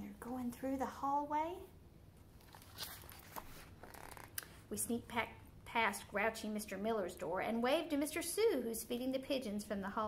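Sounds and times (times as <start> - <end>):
low steady room hum: 0.0 - 10.0
paper pages rustling: 2.4 - 4.3.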